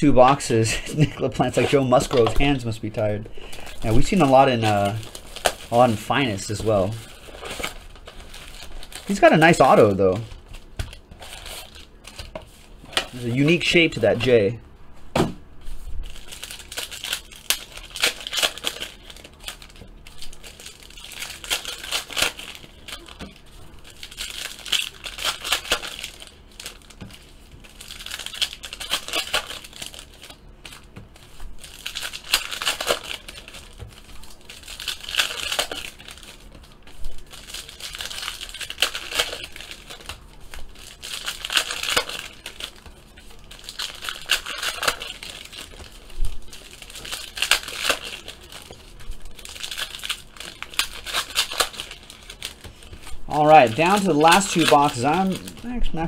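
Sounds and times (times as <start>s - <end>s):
foil wrappers crinkling: 0.2s - 14.5s, 16.0s - 56.0s
cards being flipped through: 24.2s - 56.0s.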